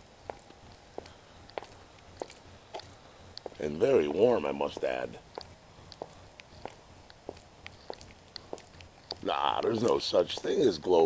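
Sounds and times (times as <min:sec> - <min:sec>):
faint clicks and ticks: 0:00.0 - 0:11.0.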